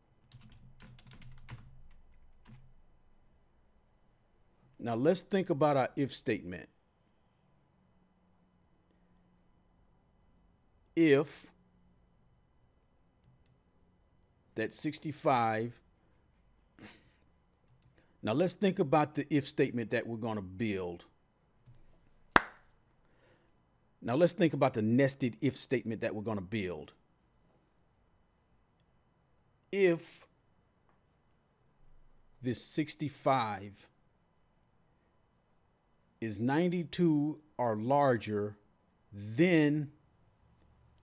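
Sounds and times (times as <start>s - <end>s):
computer keyboard typing: 0.2s - 2.7s.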